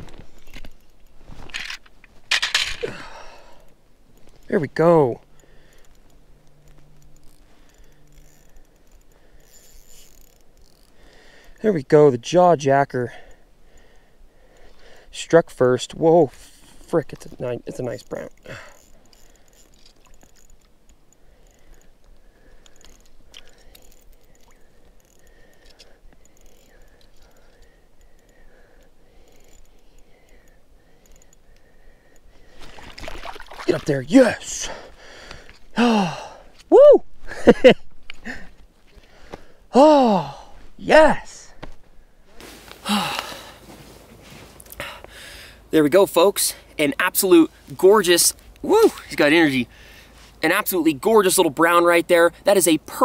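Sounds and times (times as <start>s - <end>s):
fishing reel clicking: 5.2s - 11.7s, 16.8s - 32.6s.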